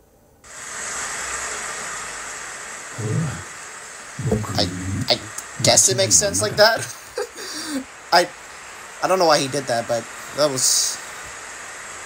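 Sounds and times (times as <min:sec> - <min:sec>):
steady rushing hiss: 0:00.5 - 0:12.0.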